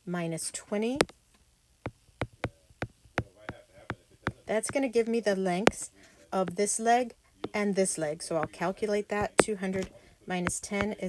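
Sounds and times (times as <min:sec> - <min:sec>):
stylus tapping on tablet screen: 0:01.9 - 0:04.9, 0:05.6 - 0:05.9, 0:08.4 - 0:11.0.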